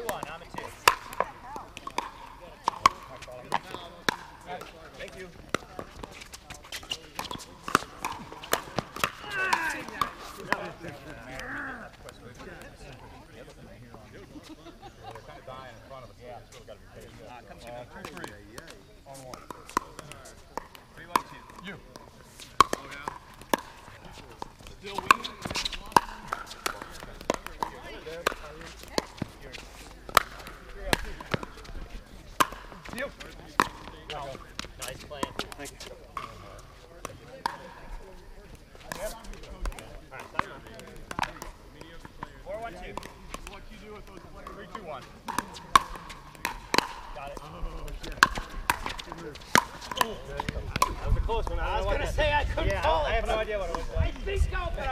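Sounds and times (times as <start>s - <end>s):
paddles striking plastic ball: 0.0s - 6.1s, 6.7s - 11.5s, 18.0s - 29.4s, 30.1s - 36.4s, 38.9s - 43.6s, 44.4s - 51.5s.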